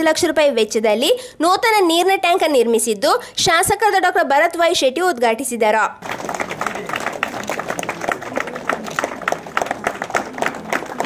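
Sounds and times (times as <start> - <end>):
crowd applauding: 6.0 - 11.0.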